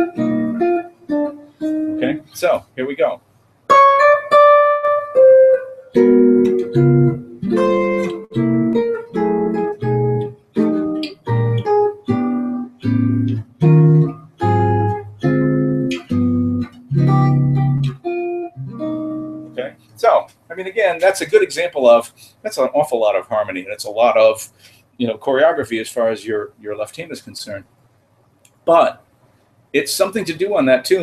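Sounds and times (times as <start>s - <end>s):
jazz guitar chord melody: 0.0s - 2.3s, 3.7s - 19.9s.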